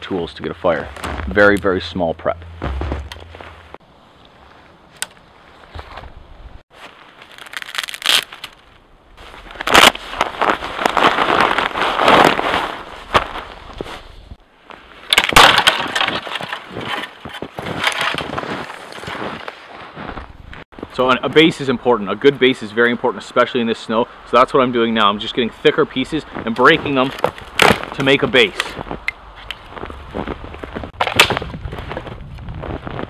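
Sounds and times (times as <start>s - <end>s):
branches rustling: 2.4s - 20.6s
dry twigs snapping: 4.9s - 5.3s, 7.1s - 8.8s.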